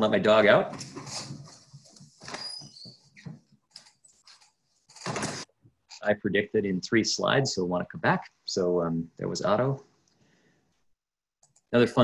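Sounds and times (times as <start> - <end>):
door opening: 4.9 - 5.5.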